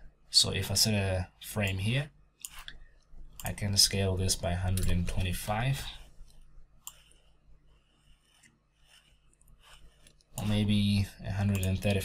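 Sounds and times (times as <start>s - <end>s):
low steady hum: 0.0s - 12.0s
faint computer clicks: 6.8s - 7.1s, 11.4s - 12.0s.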